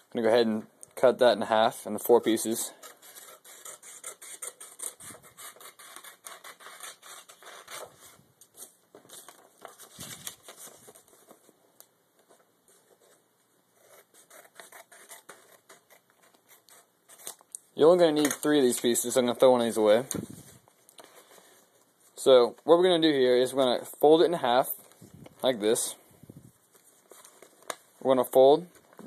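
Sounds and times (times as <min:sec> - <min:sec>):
scissors cutting paper: 0:02.8 - 0:07.9, 0:13.8 - 0:17.4.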